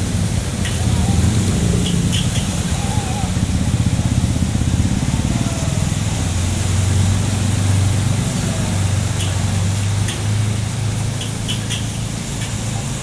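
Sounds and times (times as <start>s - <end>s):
motorcycle engines running: 0.0s - 13.0s
water washing around wheels: 0.0s - 13.0s.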